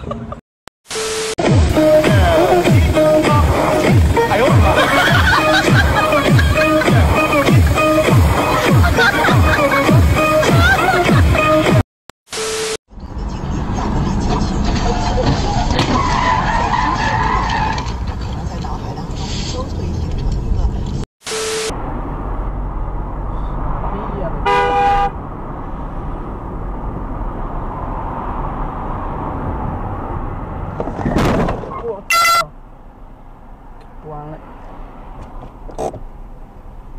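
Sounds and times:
road noise: 0:00.0 - 0:36.9
car tyres squealing: 0:13.4 - 0:18.4
short loud beep: 0:21.2 - 0:21.7.

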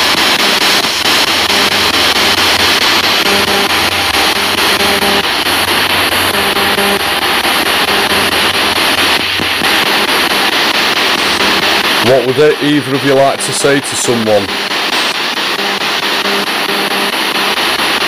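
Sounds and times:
radio static hiss: 0:00.0 - 0:18.0
rapid radio station changes: 0:00.0 - 0:18.0
snatches of broadcast sound: 0:00.0 - 0:18.0.

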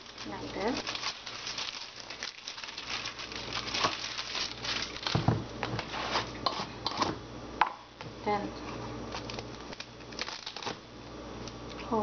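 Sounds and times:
plastic bottle and wrapper crinkling: 0:00.0 - 0:06.4, 0:09.1 - 0:10.8.

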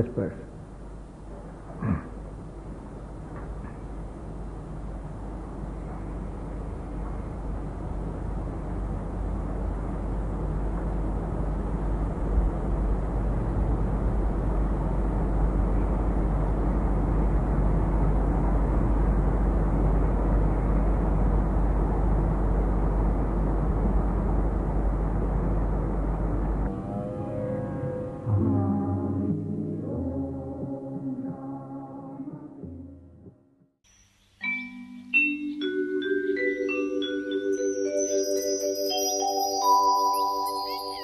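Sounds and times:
deep hum: 0:00.0 - 0:33.4
steady rushing noise: 0:02.4 - 0:28.3.

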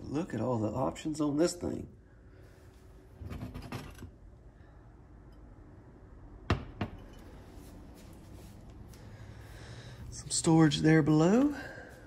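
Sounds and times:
kettle knocking on cooktop: 0:06.5 - 0:07.0.

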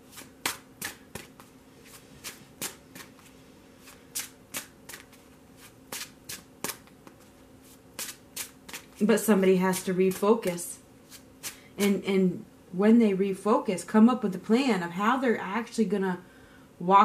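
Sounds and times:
cards being shuffled: 0:00.1 - 0:09.0.

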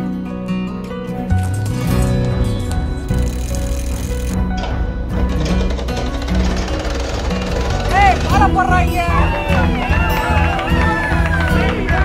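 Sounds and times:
background music with bass: 0:00.0 - 0:12.0
sewing machine clattering: 0:03.2 - 0:09.0.

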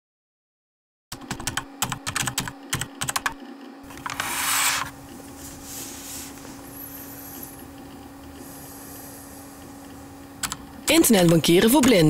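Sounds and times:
steady low hum: 0:01.2 - 0:12.0.

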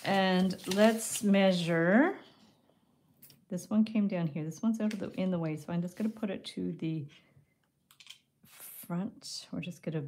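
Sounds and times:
wire brushing paper: 0:00.0 - 0:01.8.

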